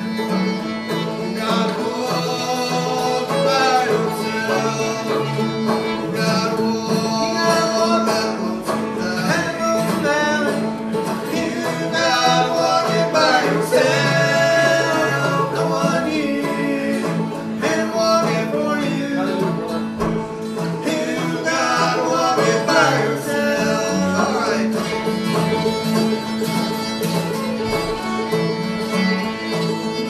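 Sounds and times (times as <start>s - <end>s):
fiddle melody: 0.0s - 30.0s
picked banjo: 0.0s - 30.0s
strummed acoustic guitar: 0.0s - 30.0s.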